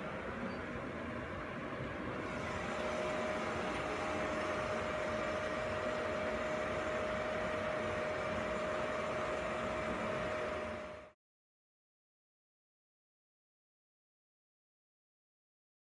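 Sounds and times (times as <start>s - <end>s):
machinery humming: 0.0s - 11.2s.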